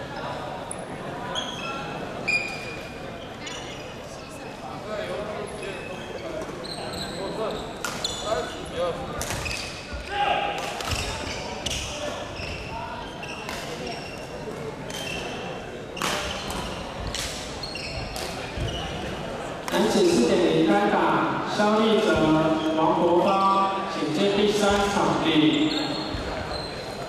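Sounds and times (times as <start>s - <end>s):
murmur of chatter: 0.0s - 27.0s
sneakers squeaking on wooden floor: 5.6s - 8.7s, 9.3s - 10.1s, 10.9s - 19.2s, 25.4s - 27.0s.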